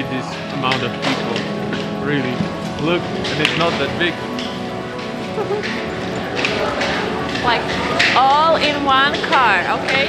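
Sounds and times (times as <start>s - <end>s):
background music: 0.0s - 10.0s
chattering voices: 0.0s - 10.0s.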